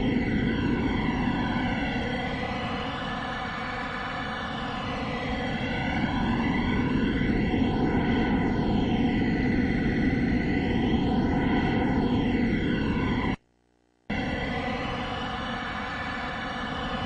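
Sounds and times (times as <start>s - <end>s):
droning soundtrack with sweeping tones: 0.0s - 13.3s.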